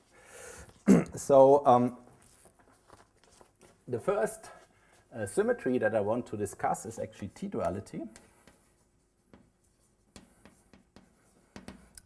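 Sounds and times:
chalk tapping and scraping: 2.2s - 12.0s.

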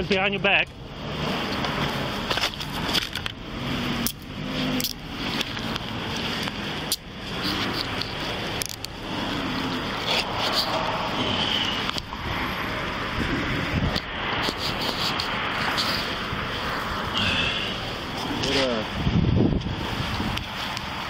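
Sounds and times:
handcuffs clicking: 4.0s - 5.8s.

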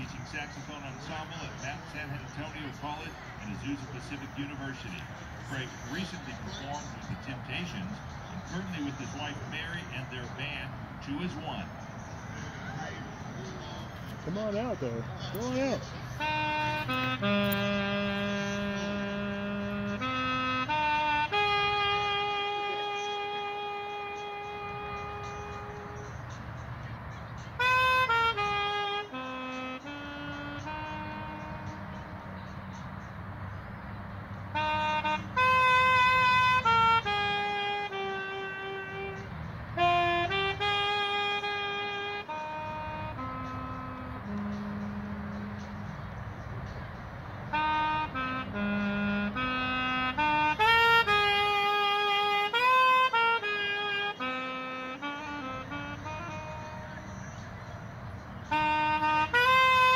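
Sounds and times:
solo saxophone melody: 0.0s - 12.1s, 14.2s - 59.9s.

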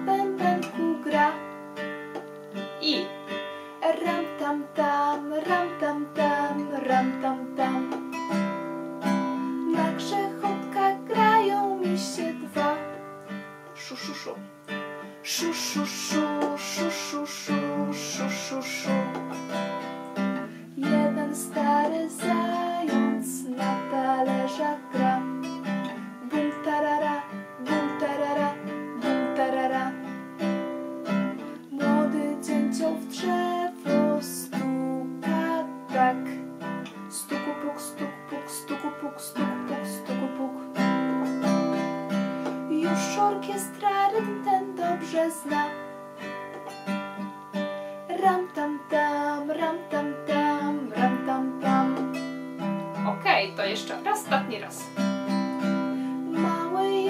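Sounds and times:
woman singing without words: 0.0s - 1.6s, 3.8s - 8.3s, 9.3s - 13.1s, 13.8s - 19.8s, 20.4s - 30.6s, 31.4s - 41.8s, 42.4s - 46.0s, 48.0s - 52.2s, 55.6s - 57.0s
acoustic guitar strumming: 0.0s - 57.0s.

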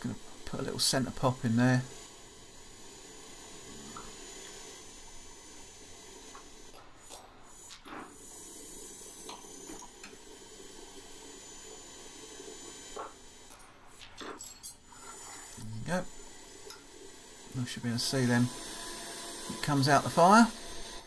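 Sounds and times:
workshop hiss: 0.0s - 21.0s.

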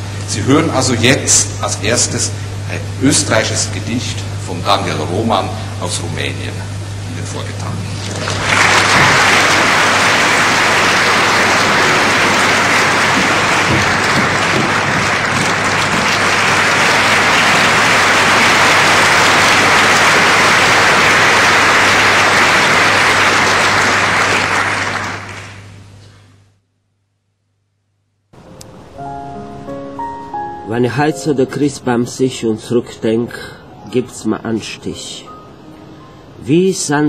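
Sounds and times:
audience applauding: 8.0s - 25.8s.

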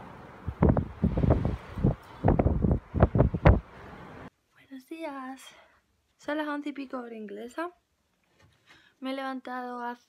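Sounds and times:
gusty wind buffeting microphone: 0.2s - 4.3s.

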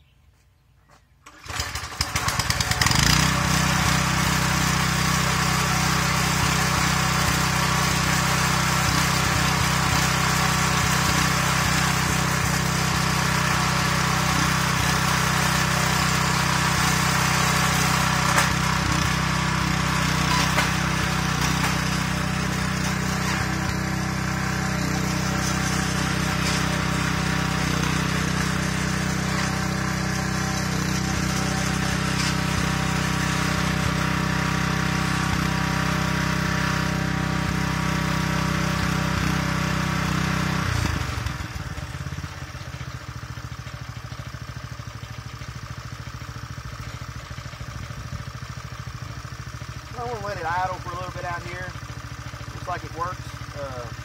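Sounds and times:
tiller engine cranking: 1.2s - 54.0s
tiller engine idling: 1.2s - 54.0s.

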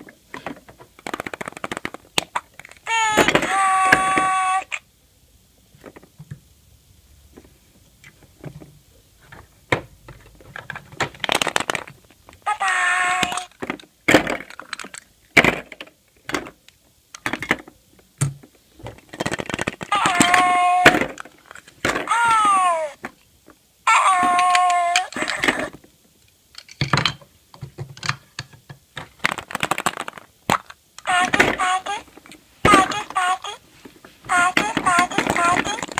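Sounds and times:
plastic toys clicking and knocking: 0.0s - 4.8s, 9.3s - 23.2s, 23.9s - 33.6s, 34.2s - 35.9s
high voice-like pitched sounds: 2.4s - 4.8s, 12.4s - 13.5s, 19.9s - 21.1s, 22.1s - 23.0s, 23.9s - 25.8s, 31.0s - 33.7s, 34.3s - 35.9s.

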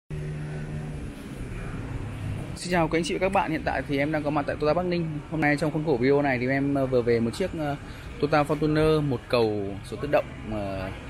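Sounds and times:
outdoor background noise: 0.1s - 11.0s
vehicle engine humming: 0.1s - 11.0s.

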